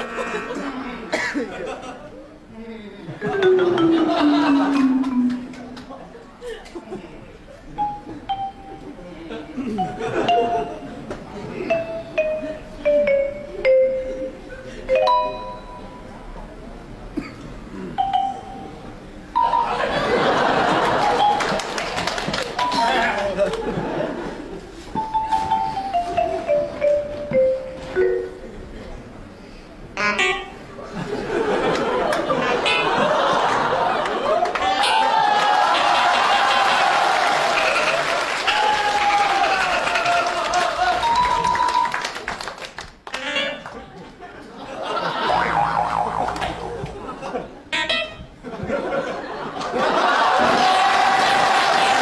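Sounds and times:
audience laughing: 0.0 - 2.2, 3.1 - 7.2, 9.3 - 11.1, 19.6 - 22.3, 22.9 - 24.6, 30.8 - 34.9, 43.9 - 47.7, 48.4 - 52.0
audience clapping: 20.8 - 23.7, 33.5 - 34.8, 35.4 - 43.2, 50.4 - 52.0
brief pitched sound: 45.2 - 47.2.

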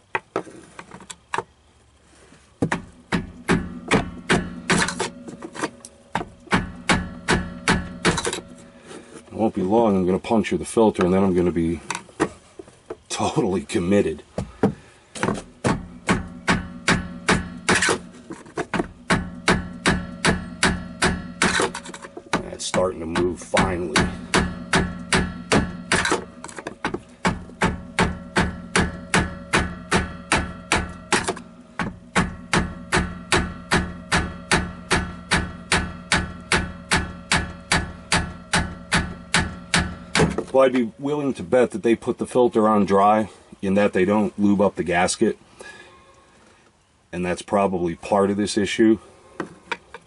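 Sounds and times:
hammer blows on metal: 2.7 - 10.0, 14.6 - 41.4.

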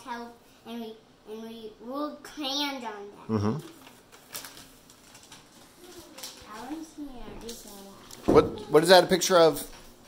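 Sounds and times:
paper rustling: 3.7 - 9.9.

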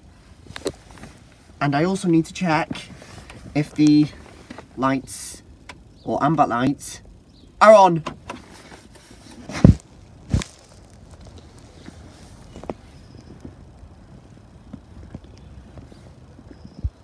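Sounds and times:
footsteps on tarmac: 0.1 - 6.1, 6.7 - 17.0.

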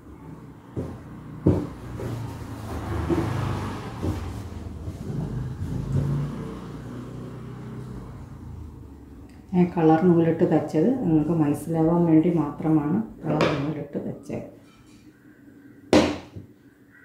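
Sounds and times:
vehicle engine passing by: 0.0 - 9.7.

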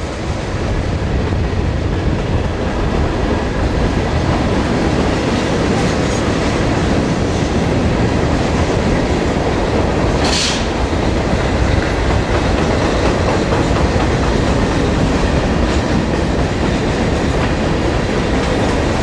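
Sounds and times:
diesel locomotives running: 0.0 - 19.0
train wheels clacking over rails: 0.0 - 19.0.

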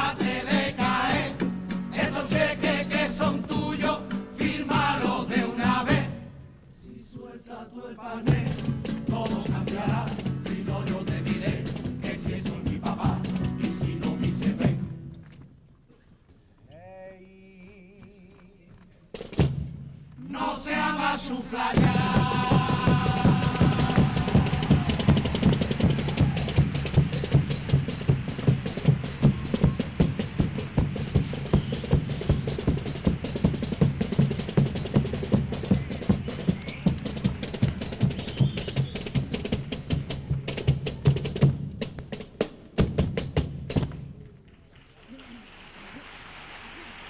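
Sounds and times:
bass drum and snare beating: 0.0 - 6.1, 8.3 - 14.9, 19.2 - 19.9, 21.6 - 44.2
strummed guitars: 0.0 - 6.3, 8.3 - 15.3, 21.8 - 40.4.

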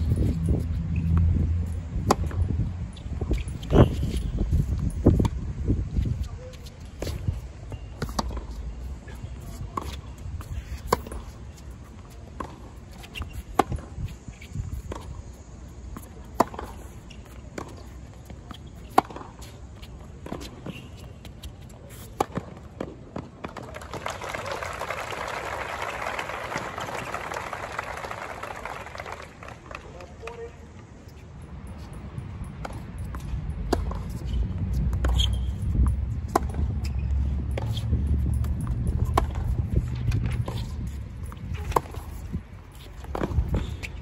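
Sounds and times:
steady low rumble: 0.0 - 3.3
racket hitting tennis ball: 2.0 - 2.4, 7.0 - 8.6, 9.4 - 11.4, 16.0 - 19.6, 20.2 - 23.6, 32.5 - 44.0
tennis racquet hitting ball: 43.0 - 43.7.

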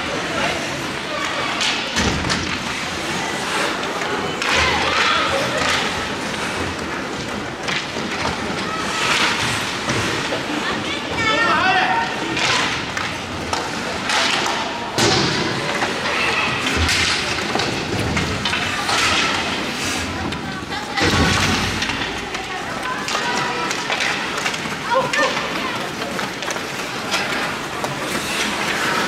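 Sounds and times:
skate blades scraping ice: 0.0 - 29.0
stick and puck clatter: 0.0 - 29.0.

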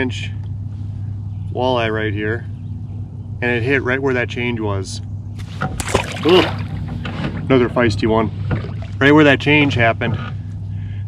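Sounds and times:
low steady hum: 0.0 - 11.0
fish splashing in water: 5.4 - 7.1, 8.4 - 9.0.

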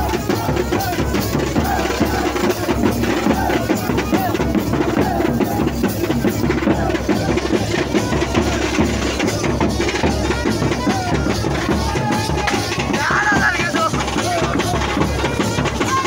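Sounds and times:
barrel drum beaten: 0.0 - 16.0
crowd shouting: 0.0 - 16.0.

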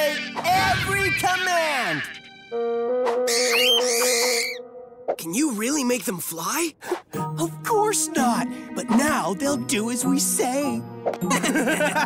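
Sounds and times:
shrill squawking cries: 0.0 - 2.4, 3.2 - 4.7.

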